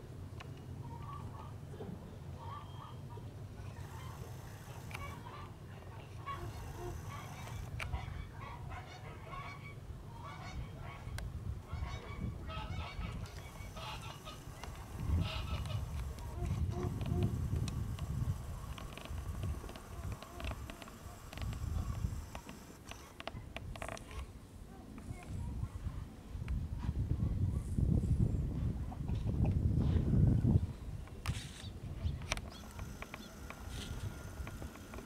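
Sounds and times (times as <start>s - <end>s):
hens clucking: 3.6s - 11.0s, 11.7s - 23.2s.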